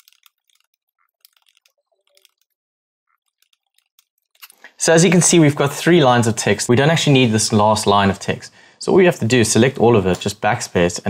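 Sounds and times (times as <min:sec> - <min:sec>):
computer keyboard typing: 0:00.0 - 0:04.4.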